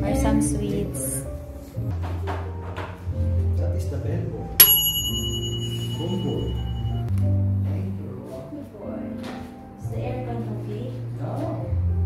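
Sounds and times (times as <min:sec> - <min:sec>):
service bell ringing: 0:04.6 - 0:07.1.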